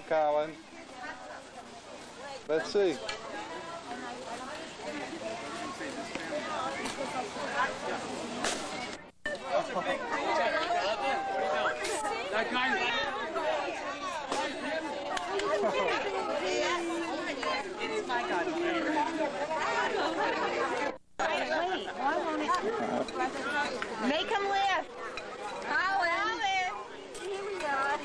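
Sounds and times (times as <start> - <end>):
people talking over one another: 0.0 - 28.0.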